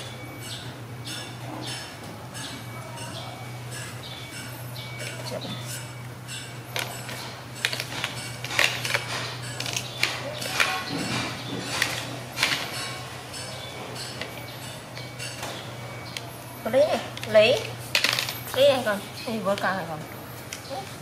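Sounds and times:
plastic parts clicking together: 7.6 - 10.8.

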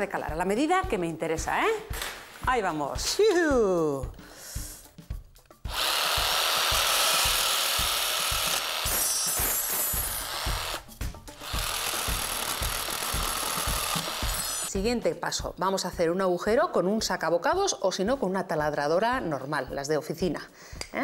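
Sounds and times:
jigsaw cutting metal rod: 5.7 - 14.7.

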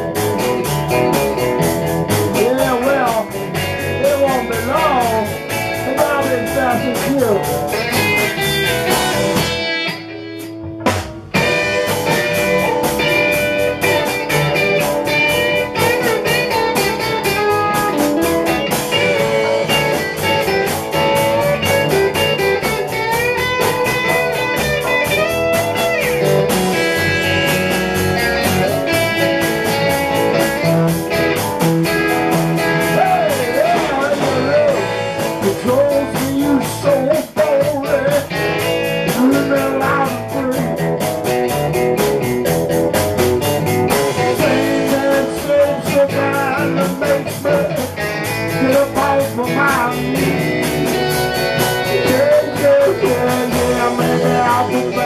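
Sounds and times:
lead guitar bending notes: 0.0 - 55.0
live rock band playing: 0.0 - 55.0.

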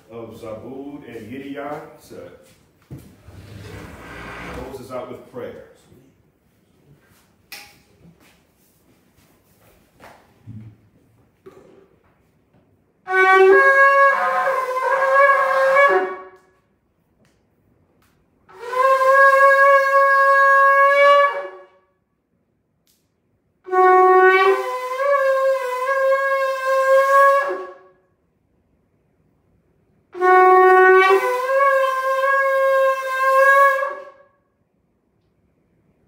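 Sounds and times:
shofar blowing long note: 13.0 - 16.6, 18.5 - 21.9, 23.7 - 28.0, 30.2 - 34.4.

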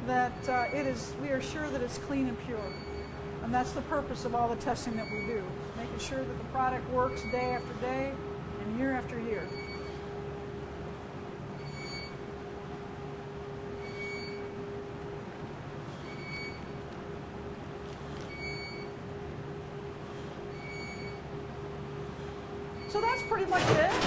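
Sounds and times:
lab equipment hum: 0.0 - 23.8.

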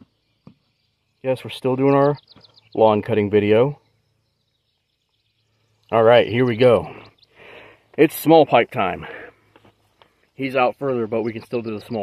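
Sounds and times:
man speaking: 2.8 - 3.8, 5.9 - 7.1, 8.0 - 9.3, 10.4 - 12.0.

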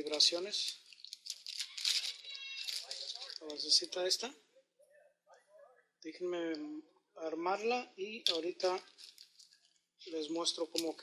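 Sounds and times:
plastic bag crinkling: 0.0 - 3.9, 8.6 - 9.7
small parts rattling: 0.0 - 3.9, 8.3 - 9.6.

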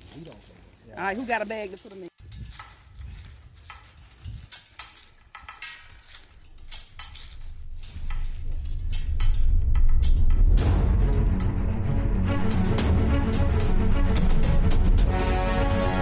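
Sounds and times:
footsteps crunching dry leaves: 0.0 - 9.6, 15.1 - 16.0
music: 6.4 - 16.0.

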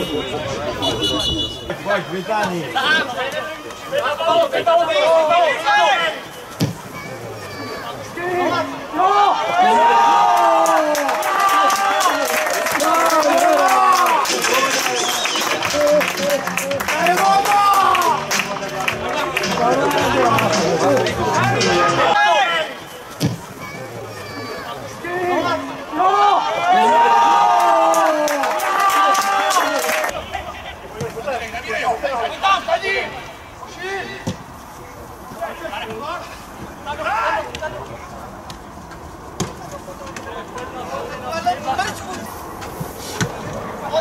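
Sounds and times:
voices talking and calling out: 0.0 - 44.0
football kicked: 6.6 - 6.9, 23.2 - 23.5.

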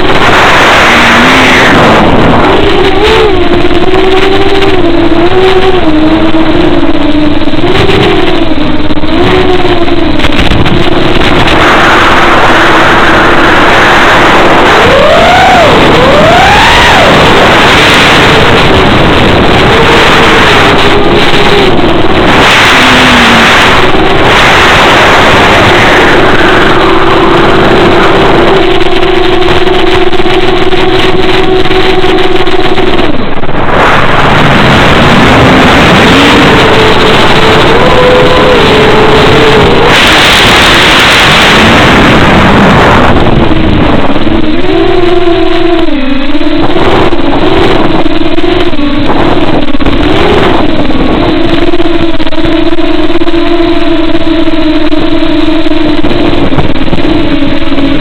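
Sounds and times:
electric motor propeller whine: 0.0 - 58.0
rushing air: 0.0 - 58.0.

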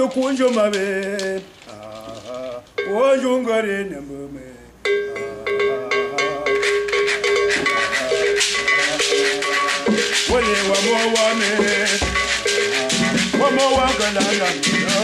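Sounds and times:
rapid rattle strokes: 0.0 - 2.8, 6.6 - 15.0
person singing: 0.0 - 15.0.

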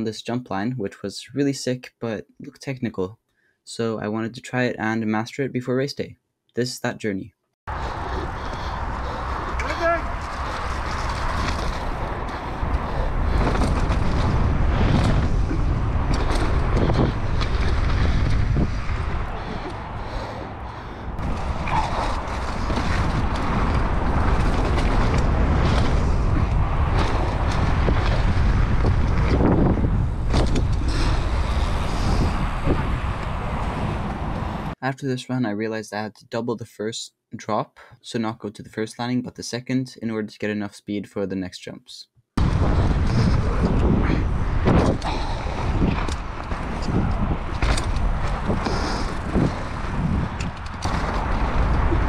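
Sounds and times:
tyres on loose dirt: 7.7 - 34.7, 42.4 - 52.0
wind rushing on microphone: 7.7 - 34.8, 42.4 - 52.0
bike knocking and rattling: 9.4 - 20.5, 21.2 - 34.4, 42.5 - 52.0.

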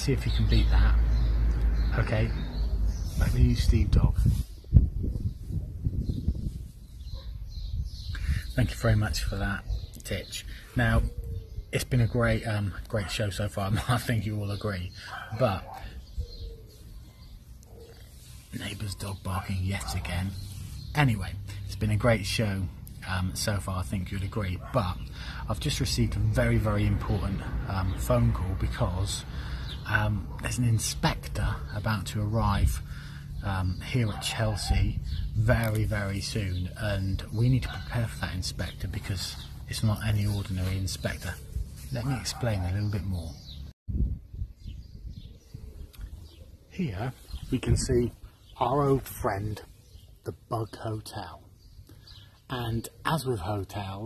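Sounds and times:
faint birdsong: 0.0 - 54.0
dog barking faintly: 17.6 - 18.1.

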